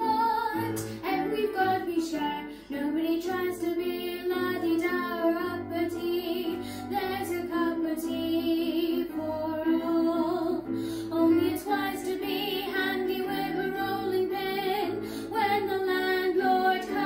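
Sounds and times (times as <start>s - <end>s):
girl singing: 0.0s - 17.0s.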